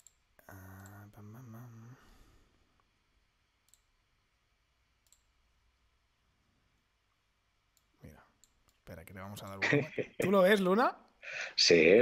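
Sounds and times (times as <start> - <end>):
computer mouse clicks: 0.0 - 1.0, 3.6 - 3.9, 5.0 - 5.3.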